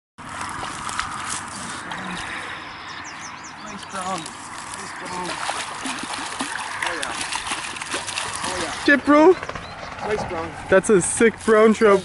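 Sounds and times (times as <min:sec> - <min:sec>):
bird chirping: 0:01.5 - 0:04.4.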